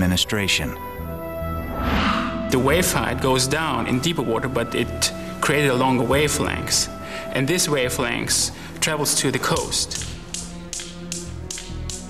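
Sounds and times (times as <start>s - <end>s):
background music with sustained tones: 0.0s - 12.0s
steel balls clicking: 9.4s - 12.0s.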